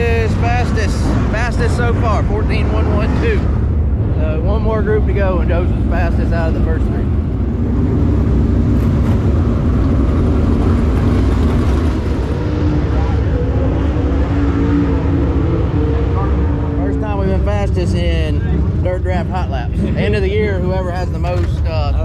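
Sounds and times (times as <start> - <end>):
race car engines rumbling: 0.0 - 22.0.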